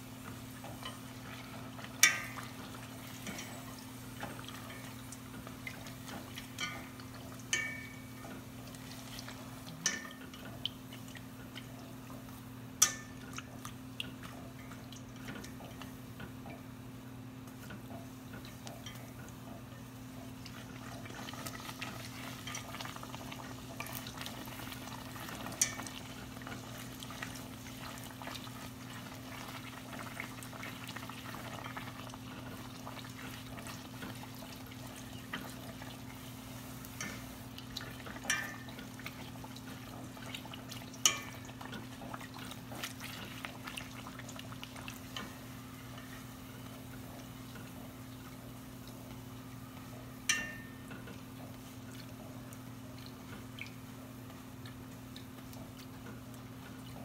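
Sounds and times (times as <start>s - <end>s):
dough deep-frying in hot oil: 0.0s - 57.0s.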